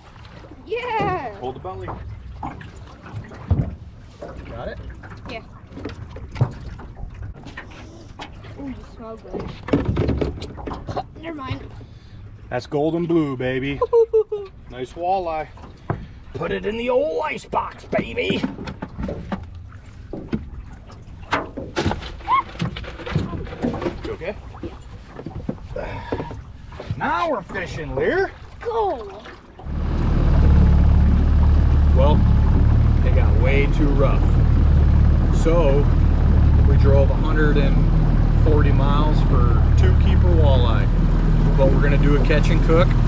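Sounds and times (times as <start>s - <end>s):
water lapping against boat hull: 0.0s - 43.0s
knocks and thumps on metal boat: 0.9s - 7.6s, 9.2s - 11.1s, 17.9s - 19.5s, 20.1s - 27.6s.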